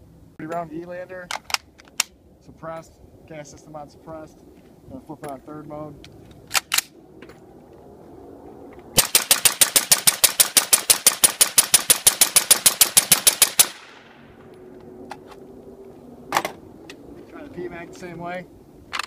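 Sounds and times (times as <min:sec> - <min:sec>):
rifle handling clicks: 0:06.0 - 0:06.9
suppressed rifle rapid fire: 0:09.0 - 0:14.1.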